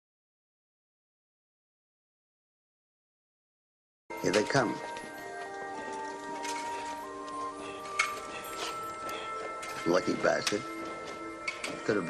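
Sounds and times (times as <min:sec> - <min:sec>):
film score music: 0:04.1 - 0:12.0.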